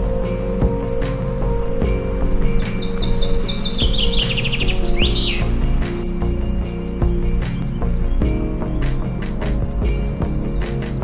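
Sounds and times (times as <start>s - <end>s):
background music sustained notes: 0.0s - 11.0s
songbird trilling: 2.5s - 6.7s.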